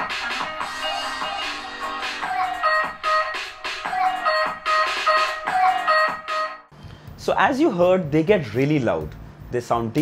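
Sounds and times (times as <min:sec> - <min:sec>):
instrumental music through tv speakers: 0:00.0 - 0:07.0.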